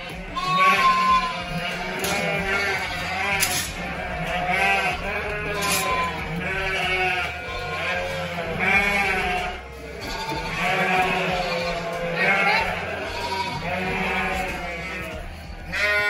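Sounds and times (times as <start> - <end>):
sheep bleating: 0.0 - 16.0.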